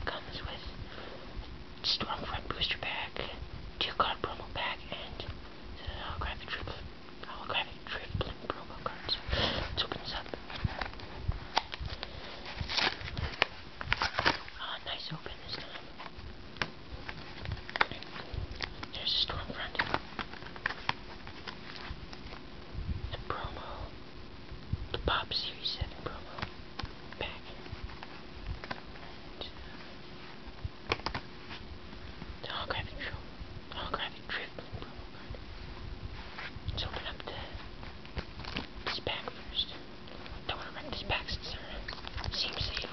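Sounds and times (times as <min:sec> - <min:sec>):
person whispering: 0:00.0 - 0:00.7, 0:01.8 - 0:10.5, 0:14.5 - 0:16.0, 0:18.8 - 0:20.0, 0:23.1 - 0:23.9, 0:24.9 - 0:26.5, 0:27.2 - 0:27.7, 0:32.4 - 0:35.4, 0:36.7 - 0:37.6, 0:38.8 - 0:39.8, 0:40.4 - 0:42.9
cardboard pulled off blister pack: 0:10.5 - 0:14.6
plastic packaging click: 0:30.9 - 0:31.2.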